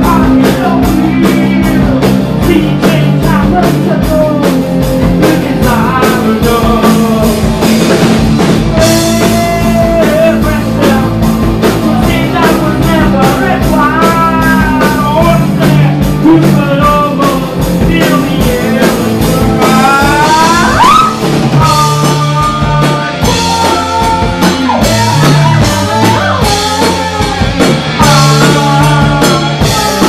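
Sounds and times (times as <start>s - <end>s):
drum kit: 0.0s - 30.0s
electric guitar: 0.0s - 30.0s
woman singing: 19.4s - 30.0s.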